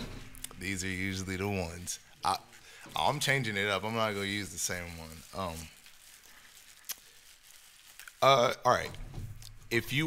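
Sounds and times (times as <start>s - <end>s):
plastic bag crinkling: 0.2s - 10.0s.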